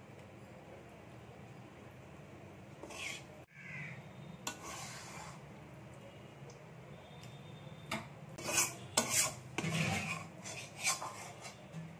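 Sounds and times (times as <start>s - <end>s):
metal spatula scraping metal pan: 2.8s - 3.4s, 4.4s - 5.5s, 8.4s - 11.9s.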